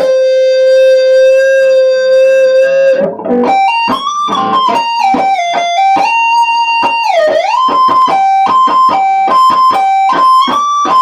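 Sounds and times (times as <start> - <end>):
electric guitar melody: 0.0 - 11.0.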